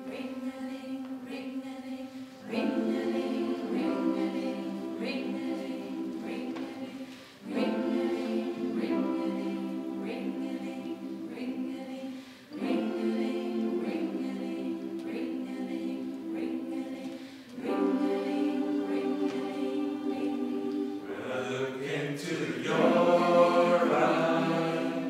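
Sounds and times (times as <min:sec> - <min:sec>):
grand piano: 0:00.0 - 0:21.2
choir singing held chords: 0:00.0 - 0:25.0.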